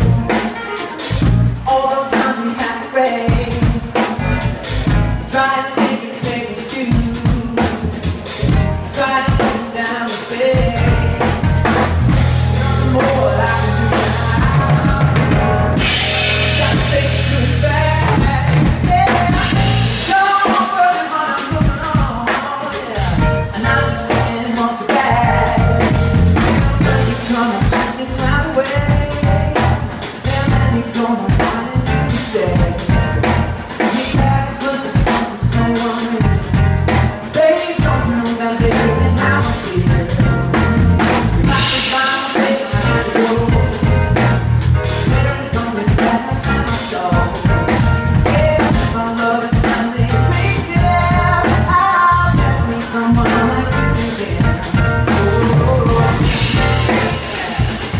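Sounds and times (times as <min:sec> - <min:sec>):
drum kit beat: 0:00.0 - 0:57.9
live band playing: 0:00.0 - 0:57.9
sustained deep bass: 0:01.1 - 0:01.7, 0:03.4 - 0:05.3, 0:07.9 - 0:08.9, 0:10.6 - 0:20.1, 0:23.0 - 0:24.4, 0:25.1 - 0:27.2, 0:28.2 - 0:30.8, 0:31.8 - 0:33.6, 0:34.2 - 0:34.5, 0:35.5 - 0:37.1, 0:38.7 - 0:41.8, 0:42.8 - 0:45.4, 0:46.4 - 0:49.0, 0:50.0 - 0:57.3.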